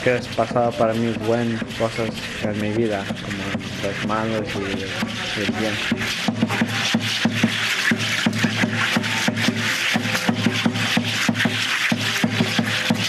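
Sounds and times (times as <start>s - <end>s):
low drum thuds: 0.0s - 13.0s
rattles shaken rhythmically: 0.0s - 13.0s.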